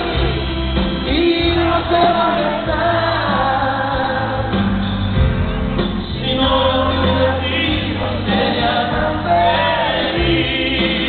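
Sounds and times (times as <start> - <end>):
people singing: 0.0 - 5.2, 6.0 - 11.0
live band playing: 0.0 - 11.0.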